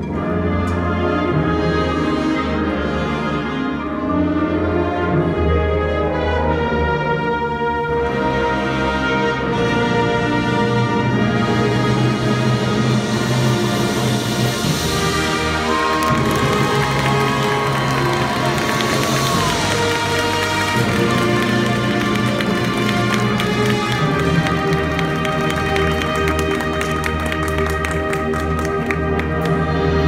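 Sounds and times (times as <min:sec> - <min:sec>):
marching band playing chords: 0:00.0 - 0:30.0
rapid percussion strikes: 0:12.6 - 0:30.0.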